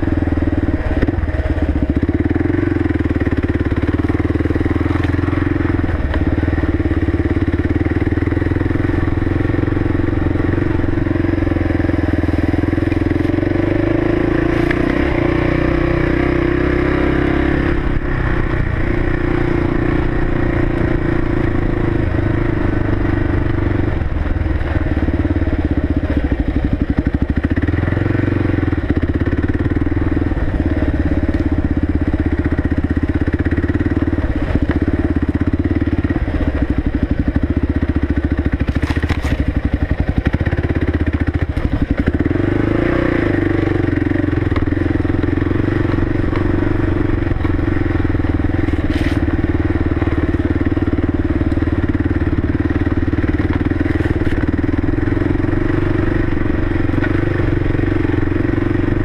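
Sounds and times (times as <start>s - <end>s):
motorcycle engine running: 0.0s - 59.0s.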